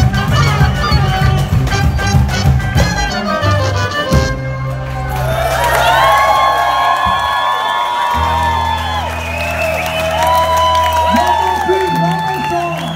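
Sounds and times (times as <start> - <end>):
audience whooping and cheering: 4.6 - 12.9.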